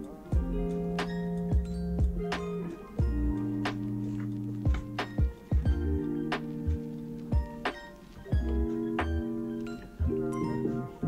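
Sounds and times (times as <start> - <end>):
background music with soft beat: 0.0 - 11.0.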